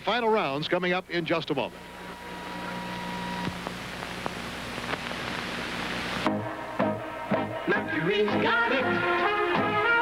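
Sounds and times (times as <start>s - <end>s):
videotape hiss and hum: 0.0s - 10.0s
commercial jingle with singing: 6.8s - 10.0s.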